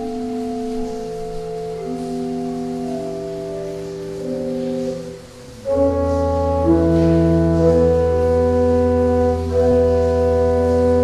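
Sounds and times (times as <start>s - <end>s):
pipe organ playing chords: 0.0s - 11.0s.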